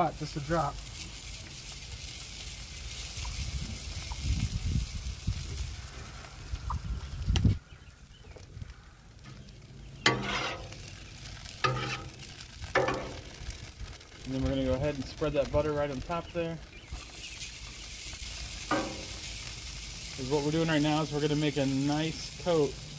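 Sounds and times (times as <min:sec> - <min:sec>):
butter sizzling on griddle: 0:00.0 - 0:22.9.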